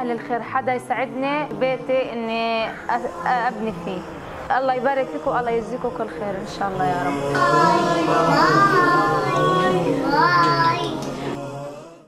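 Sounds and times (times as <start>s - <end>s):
background music: 0.0s - 12.0s
person singing long gliding notes: 6.9s - 12.0s.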